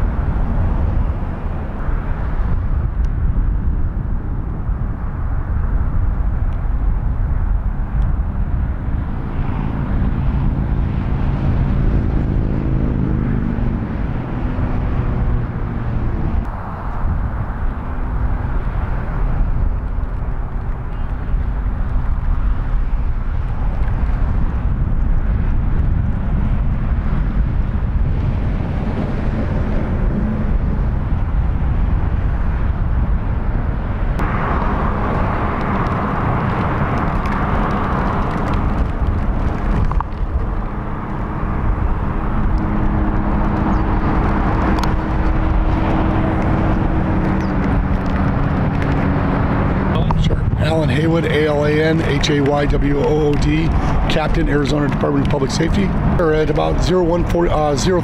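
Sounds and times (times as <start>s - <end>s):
faint engine hum: 0.0s - 58.0s
freeway traffic roar: 0.0s - 58.0s.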